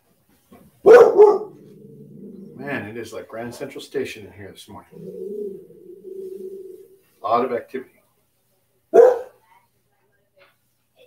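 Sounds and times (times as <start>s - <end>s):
dog barking: 0.8s - 2.3s, 8.9s - 9.4s.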